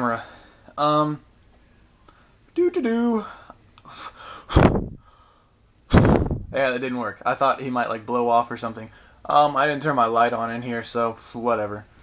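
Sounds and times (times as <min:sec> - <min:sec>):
person blowing puffs of air: 0:03.9 - 0:06.5.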